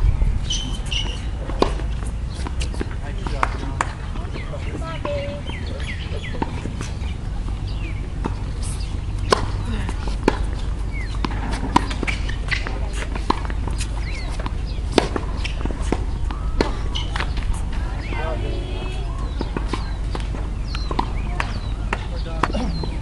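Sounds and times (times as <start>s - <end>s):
steady low rumble: 0.0s - 23.0s
tennis ball hit by rackets: 0.5s - 7.0s, 7.7s - 18.2s, 18.8s - 22.9s.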